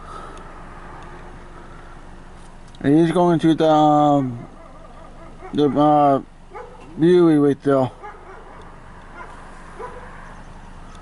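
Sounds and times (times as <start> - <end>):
distant diesel locomotive rumble: 0.0 - 11.0.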